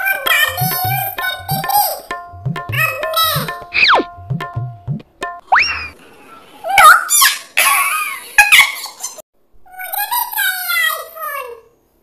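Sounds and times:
yelp-like pitched sounds: 3.3 - 7.4
comedy rising glide: 3.4 - 4.7, 5.4 - 6.4
long falling wavering cry: 5.4 - 6.0.

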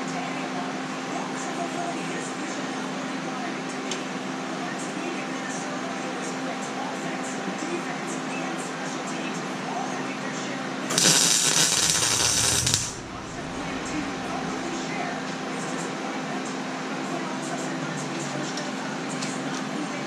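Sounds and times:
welder crackling hiss: 10.9 - 13.2
steady low hum: 10.9 - 16.3.

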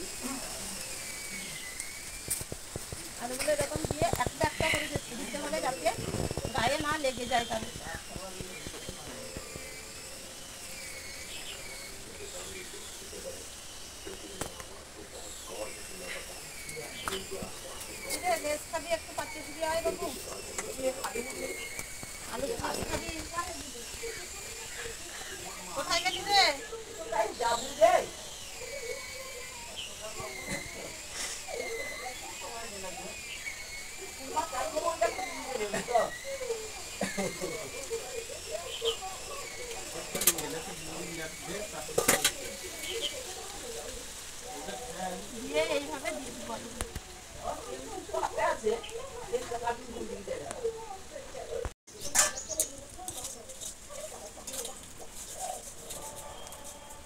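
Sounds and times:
high wavering whine: 0.0 - 51.0
birds chirping: 0.0 - 57.0
indistinct voices: 0.0 - 57.0
outdoor ambience: 0.0 - 57.0.

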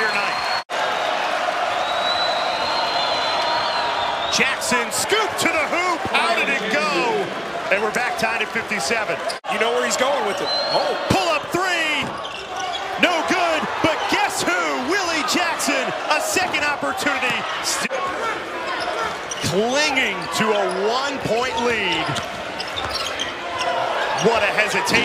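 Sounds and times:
crowd voices and shouts: 0.0 - 25.0
sneaker squeaks: 11.9 - 13.0, 18.6 - 24.6.

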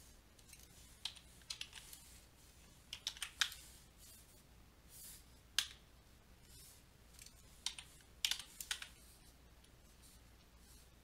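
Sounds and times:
keyboard and mouse clicks: 0.4 - 2.0, 2.9 - 3.7, 5.6 - 5.8, 7.1 - 9.0.

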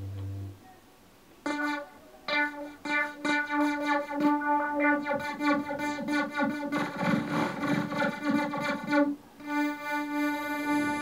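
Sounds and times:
synthesizer repeating pitched note: 1.5 - 11.0
burst of noise: 6.1 - 9.1.

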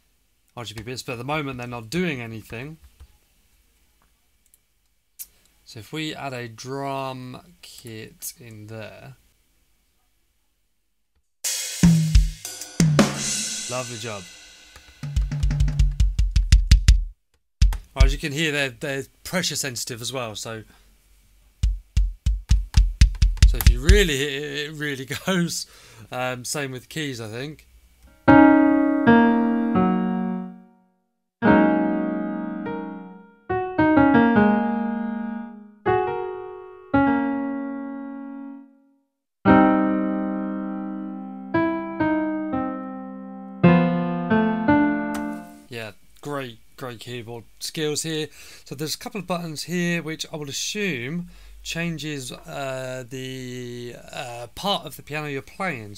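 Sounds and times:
cymbal crash: 11.5 - 15.0
piano-like keyboard chords: 28.1 - 30.8, 31.4 - 38.8, 39.4 - 45.7.

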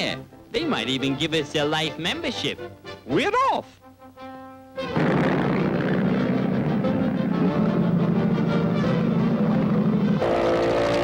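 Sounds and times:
cartoon car engine running: 4.9 - 11.0.

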